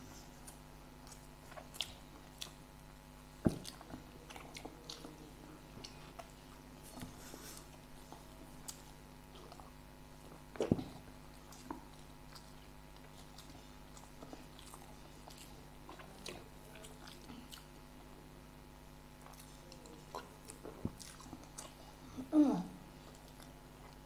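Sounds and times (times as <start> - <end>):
people chewing: 0.0 - 18.3, 19.0 - 24.0.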